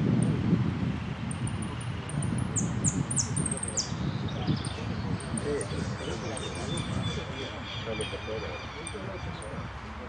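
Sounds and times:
low rumble of wind: 0:00.0 - 0:10.0
finch singing high chirps: 0:01.4 - 0:09.7.

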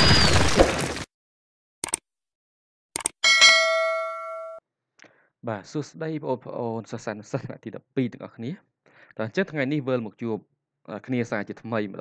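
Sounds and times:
notification bell chime: 0:03.2 - 0:04.6.

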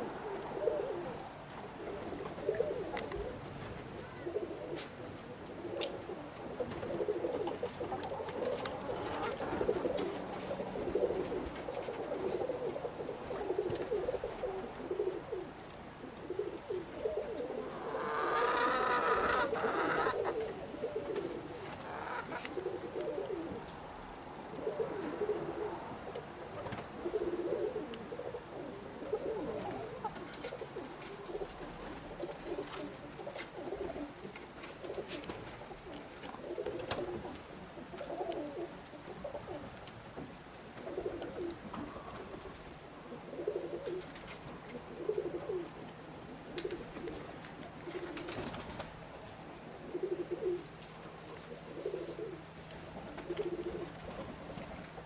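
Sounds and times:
pigeons cooing: 0:00.0 - 0:39.8, 0:40.7 - 0:55.0.

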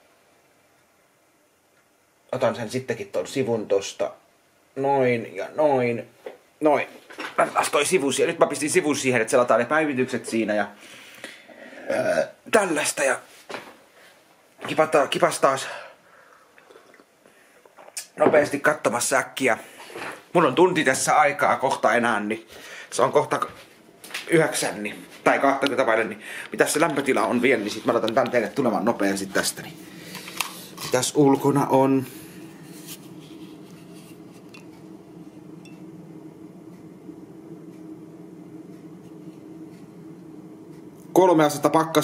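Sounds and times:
low room hum: 0:00.0 - 0:42.0
sipping and swallowing coffee: 0:16.6 - 0:18.0.

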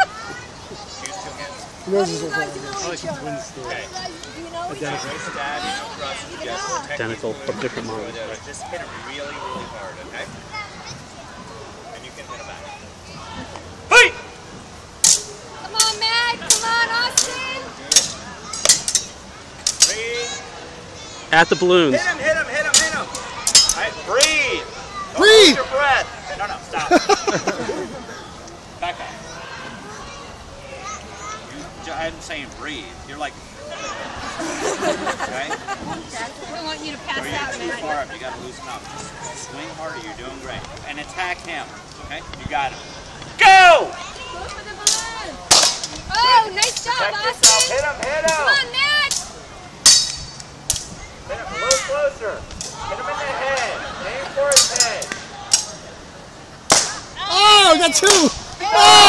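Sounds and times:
people shouting: 0:13.2 - 0:14.4, 0:21.4 - 0:26.4, 0:43.4 - 0:44.1, 0:56.7 - 0:59.0
practice swords clacking: 0:15.0 - 0:20.0, 0:22.7 - 0:24.4, 0:46.6 - 0:48.5, 0:49.9 - 0:50.9, 0:54.5 - 0:55.8.

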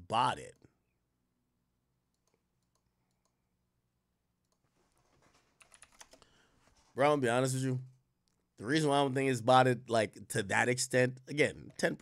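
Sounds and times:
computer keyboard typing: 0:04.4 - 0:06.2.

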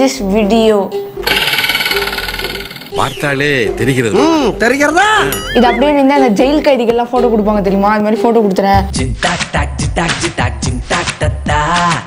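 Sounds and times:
fast rattling whirr: 0:01.2 - 0:02.9.

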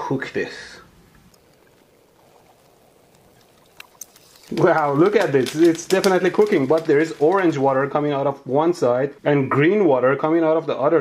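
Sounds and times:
faint sizzling: 0:00.0 - 0:10.4
small clicks: 0:03.1 - 0:07.6.

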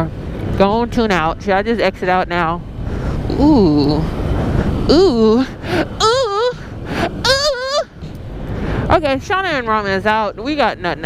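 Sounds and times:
ride noise: 0:00.0 - 0:11.0
rushing wind: 0:00.0 - 0:11.0
person hooting: 0:04.9 - 0:08.0.

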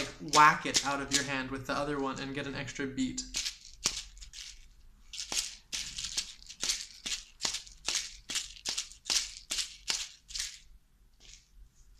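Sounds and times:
asalato seeds rattling: 0:03.2 - 0:11.5.

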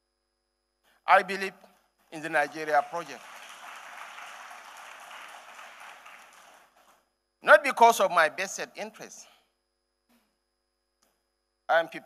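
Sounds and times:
audience applauding: 0:02.2 - 0:06.9.

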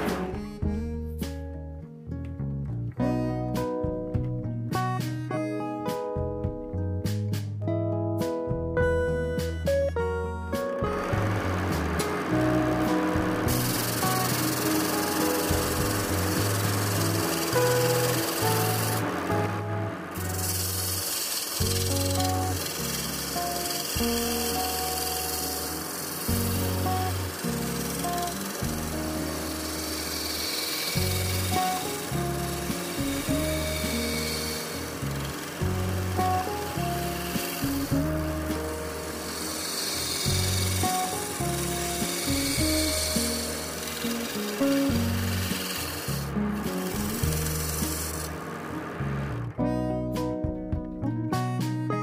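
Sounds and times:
background music with bass line: 0:00.0 - 0:21.0, 0:21.6 - 0:52.0
chisel scraping spinning tube: 0:10.9 - 0:19.5, 0:20.1 - 0:49.2.

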